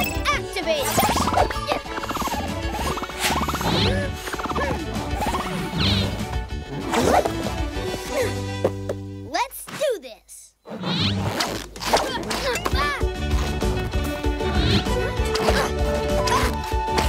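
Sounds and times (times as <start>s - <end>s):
cartoon background music: 0.0s - 17.0s
swooping sound effects: 0.8s - 6.2s.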